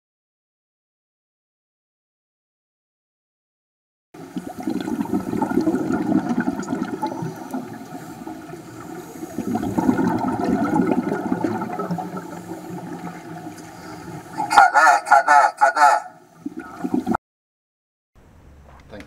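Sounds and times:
water rushing and bubbling: 0:04.2 - 0:14.6, 0:16.3 - 0:17.2.

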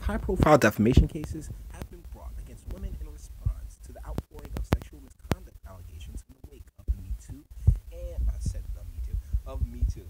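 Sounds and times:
irregular low thumps: 0:00.0 - 0:10.0
man speaking: 0:00.0 - 0:10.0.

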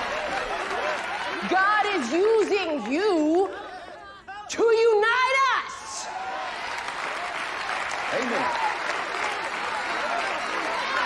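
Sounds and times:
congregation applauding: 0:00.0 - 0:03.9, 0:06.1 - 0:11.0.

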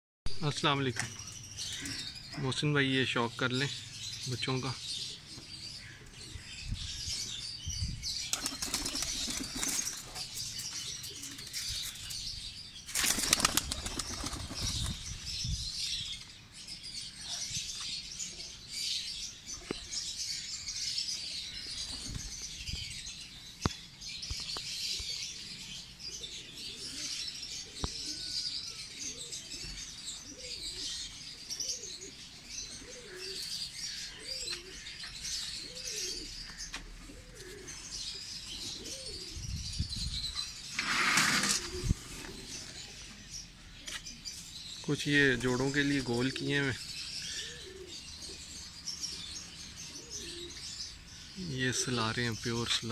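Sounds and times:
small birds chirping: 0:00.4 - 0:52.9
pigeons cooing: 0:04.8 - 0:12.3, 0:24.8 - 0:39.7, 0:40.3 - 0:44.0, 0:45.4 - 0:52.0
pigeons flapping wings: 0:08.3 - 0:10.2, 0:12.9 - 0:15.0.

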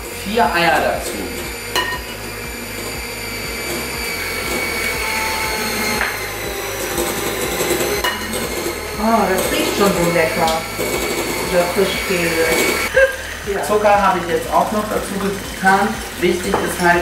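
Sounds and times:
electric hand mixer whirring: 0:00.0 - 0:17.0.

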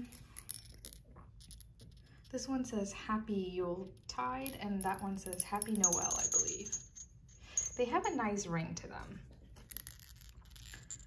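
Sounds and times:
ceramic bells clinking: 0:04.8 - 0:08.2.

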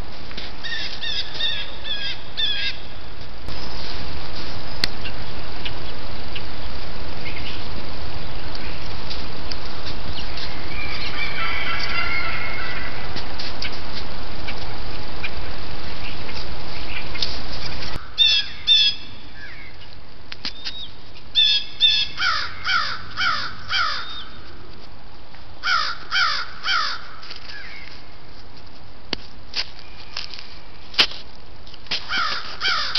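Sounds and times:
steady loud hiss: 0:00.0 - 0:32.9
birds calling harshly: 0:00.6 - 0:03.0, 0:10.0 - 0:13.8, 0:14.4 - 0:24.6, 0:25.6 - 0:28.1, 0:32.0 - 0:32.9.

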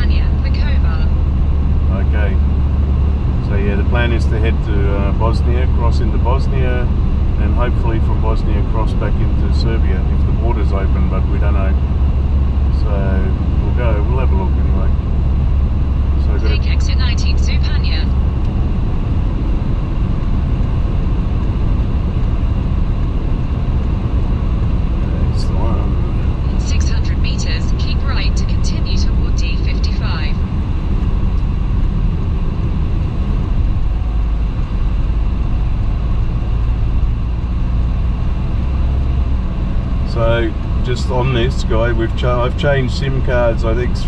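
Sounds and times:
car cabin road rumble: 0:00.0 - 0:44.0.

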